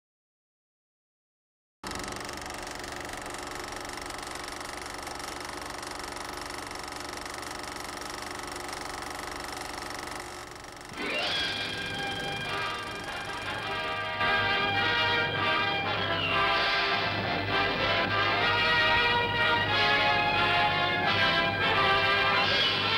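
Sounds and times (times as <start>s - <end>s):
synthesized drone: 10.7s - 22.9s
electronic music: 10.9s - 17.0s.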